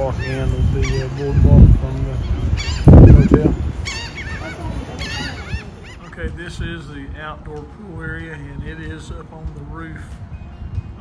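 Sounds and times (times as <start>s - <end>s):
gulls calling: 0.0s - 7.0s.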